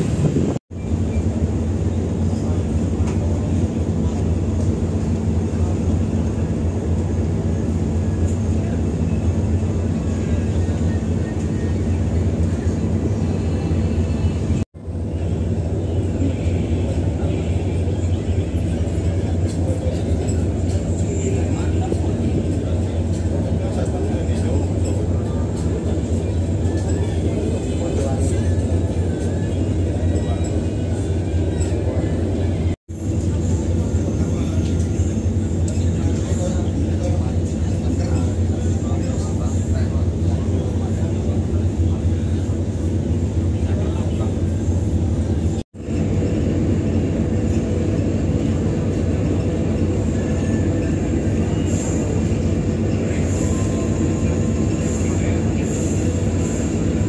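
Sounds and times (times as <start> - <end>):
ship engines droning: 0.0 - 57.0
wind: 0.0 - 57.0.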